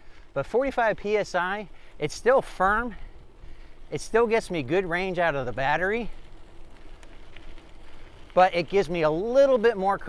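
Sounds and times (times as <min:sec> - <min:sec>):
bike rolling on gravel: 0:00.0 - 0:10.0
faint steady hum: 0:00.0 - 0:10.0.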